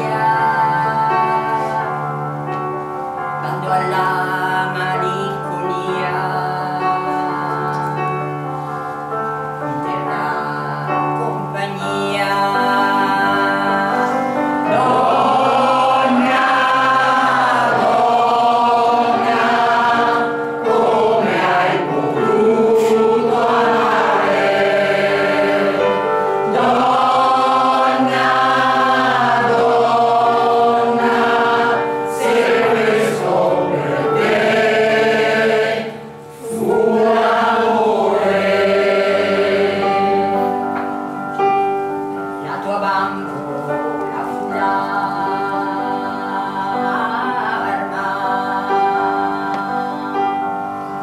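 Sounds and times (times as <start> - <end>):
mixed choir singing: 0.0 - 2.2, 10.0 - 41.1, 43.9 - 51.0.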